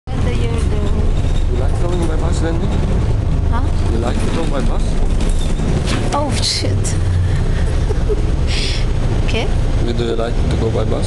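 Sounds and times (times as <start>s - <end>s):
voices: 0.1s - 2.8s, 5.9s - 11.0s
bus rumble from inside: 0.1s - 11.0s.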